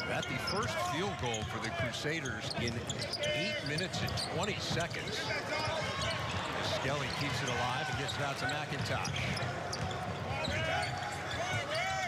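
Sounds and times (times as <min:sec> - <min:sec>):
murmur of arena crowd: 0:00.0 - 0:12.0
basketball dribbling: 0:06.9 - 0:11.8
sneaker squeaks on hardwood: 0:07.0 - 0:11.8.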